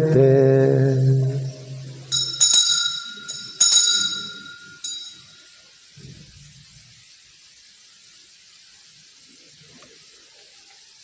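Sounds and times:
altar bells ringing: 0:01.8 - 0:05.8.

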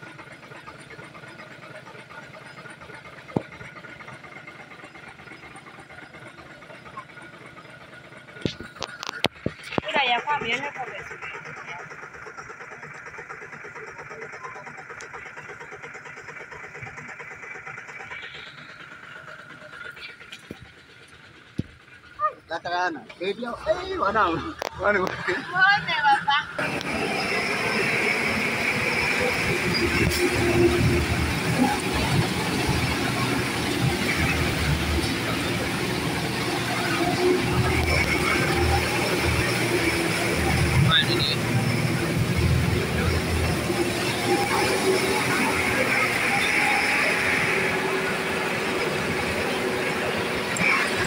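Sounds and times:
vehicle engine idling: 0:00.0 - 0:51.0.

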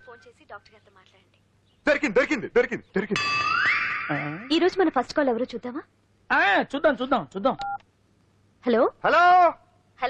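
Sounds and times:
person speaking: 0:00.0 - 0:03.5.

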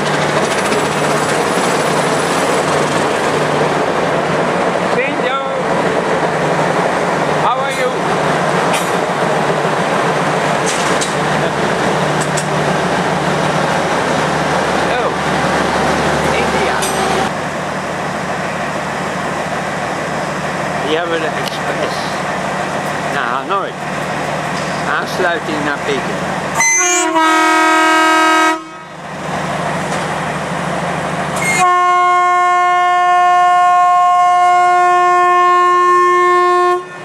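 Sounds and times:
diesel locomotive engine drone: 0:00.0 - 0:37.0
people's voices: 0:16.2 - 0:17.1, 0:20.8 - 0:22.3, 0:24.6 - 0:26.2.

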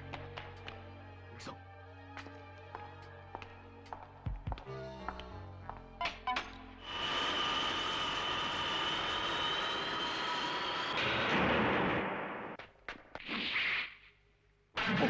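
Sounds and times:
background music: 0:00.0 - 0:08.0.

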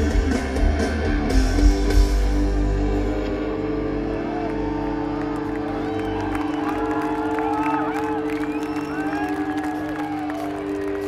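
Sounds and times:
electric guitar droning: 0:00.0 - 0:11.0
crowd cheering and whistling: 0:03.2 - 0:11.0.

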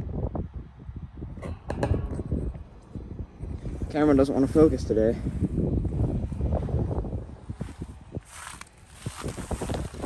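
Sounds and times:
heat pump fan rumbling: 0:00.0 - 0:10.0
wind on microphone: 0:00.0 - 0:10.0
footsteps crunching on pine straw: 0:07.5 - 0:10.0.

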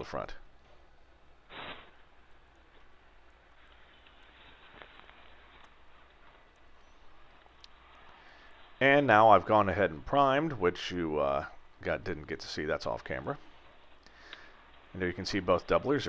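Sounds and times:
short hiss: 0:01.4 - 0:02.3.

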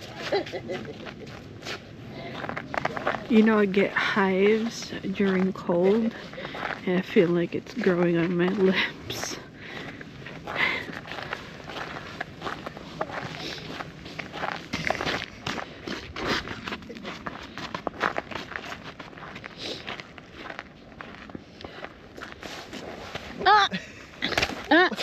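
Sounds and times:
footsteps on wet slush: 0:00.0 - 0:23.4.

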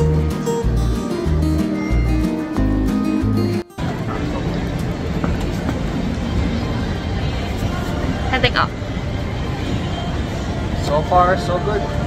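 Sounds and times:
city background rumble: 0:03.8 - 0:12.0.

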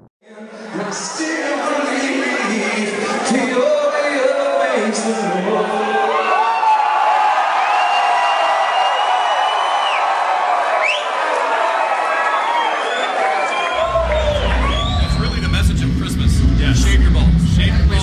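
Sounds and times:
crowd cheering and whooping: 0:04.8 - 0:18.0
long high whistle: 0:12.4 - 0:15.8
deep bass music: 0:13.8 - 0:18.0.

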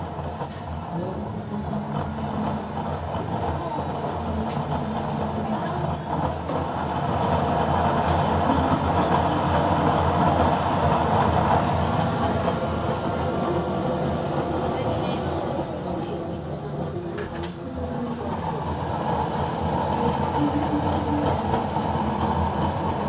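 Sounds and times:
oil burner stove rushing: 0:00.0 - 0:23.0.

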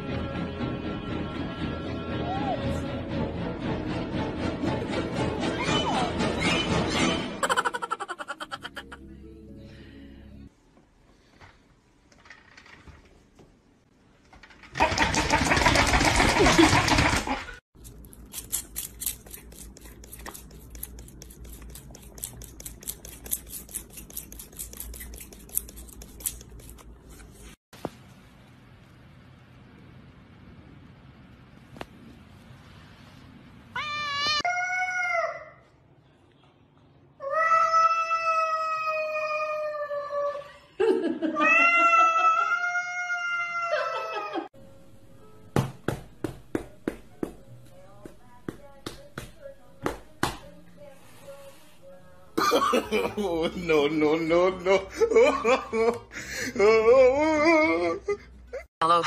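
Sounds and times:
cat yowling: 0:41.4 - 0:44.5.

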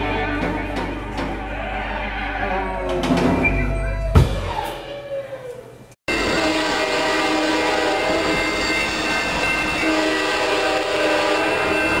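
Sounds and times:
train horn blast: 0:06.1 - 0:12.0.

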